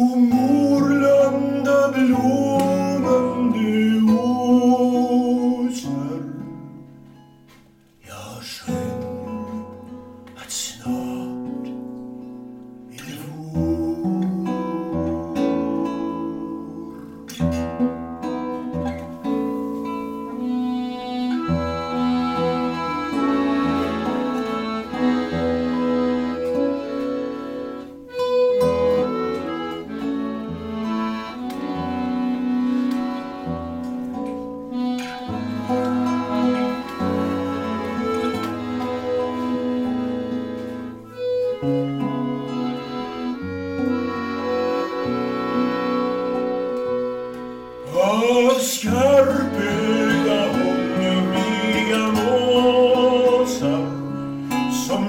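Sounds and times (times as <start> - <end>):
accordion sustained chords: 0.0 - 55.0
classical guitar plucked: 0.0 - 55.0.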